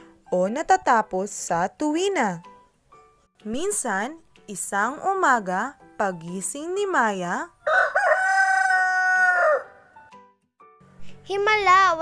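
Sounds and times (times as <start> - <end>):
rooster crowing: 7.6 - 10.0.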